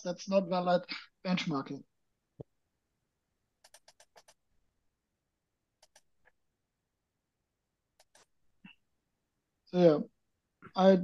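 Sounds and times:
keyboard clicks: 0:03.6 - 0:04.4, 0:05.8 - 0:06.4, 0:08.0 - 0:08.3.

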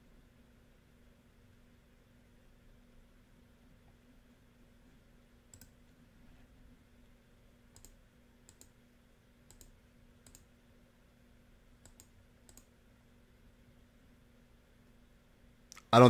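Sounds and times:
faint steady hum: 0:00.0 - 0:16.0
computer mouse button clicks: 0:09.5 - 0:10.5.

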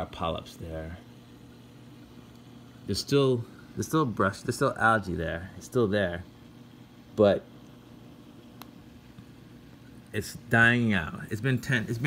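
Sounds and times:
aquarium skimmer hum and hiss: 0:00.0 - 0:12.0.

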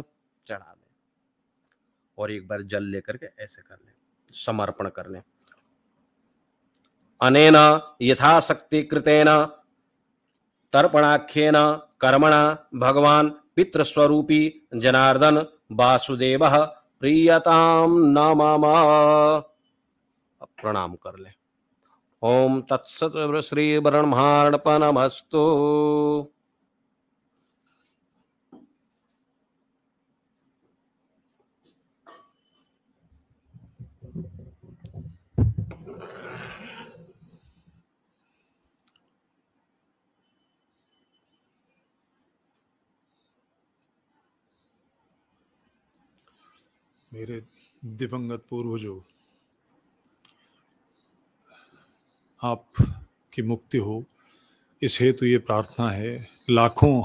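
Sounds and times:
man chanting: 0:10.8 - 0:19.6, 0:22.2 - 0:26.3.

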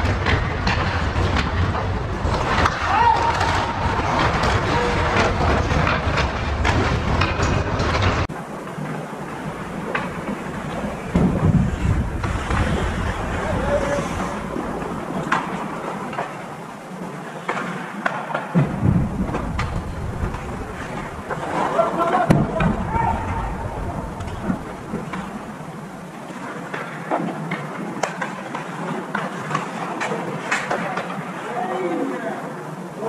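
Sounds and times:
hockey sticks and puck clicking: 0:00.0 - 0:08.3, 0:17.4 - 0:18.6, 0:26.6 - 0:31.2
dense rushing noise: 0:00.0 - 0:17.2, 0:18.6 - 0:26.4
skates scraping ice: 0:00.0 - 0:32.6.

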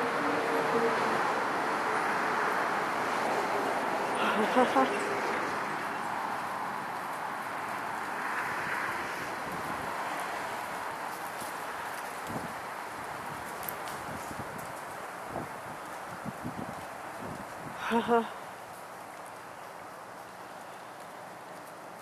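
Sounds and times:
outdoor background hiss: 0:00.0 - 0:22.0.

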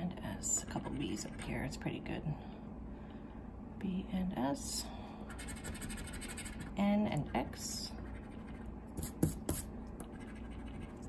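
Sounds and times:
coin scratching lottery ticket: 0:05.3 - 0:06.7.

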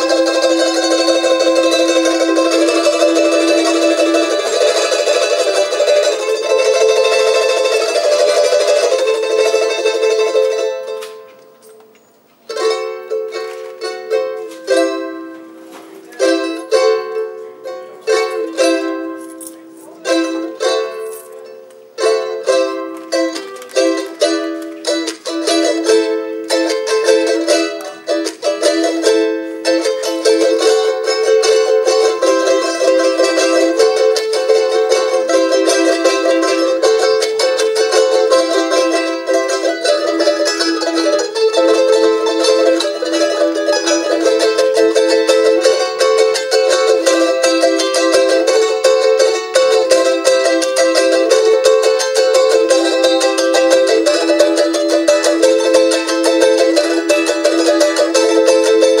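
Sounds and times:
small plucked string instrument: 0:00.0 - 0:59.0.

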